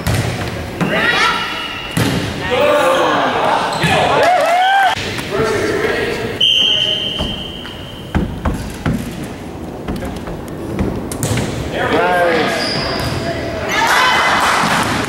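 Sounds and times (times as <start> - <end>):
referee's whistle blast: 6.4 - 8.1
young players shouting: 13.6 - 14.6.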